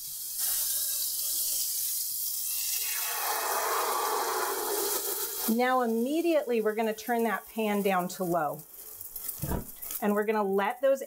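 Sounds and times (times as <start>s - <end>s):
butter sizzling in a skillet: 0.0s - 11.0s
eggs poured into a hot pan: 0.1s - 10.0s.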